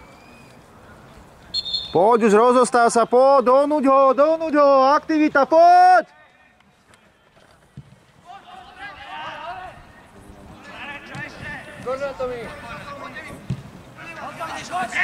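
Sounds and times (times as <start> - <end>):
people shouting: 8.2 - 9.9.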